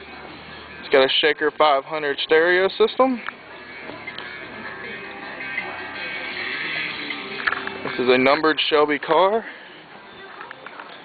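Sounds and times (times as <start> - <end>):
music from car stereo: 0.0 - 11.0.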